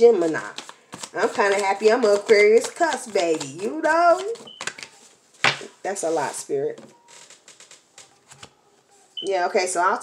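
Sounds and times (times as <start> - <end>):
card rustles: 0.0 - 9.0
cards handled on a table: 0.3 - 5.7.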